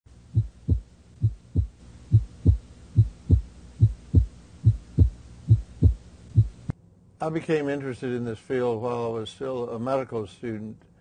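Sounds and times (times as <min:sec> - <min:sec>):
heartbeat thumps: 0:00.3 - 0:06.7.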